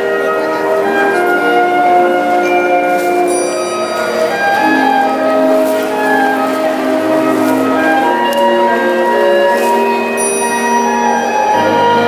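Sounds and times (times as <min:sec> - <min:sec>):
wind band playing slow piece: 0:00.0 - 0:12.0.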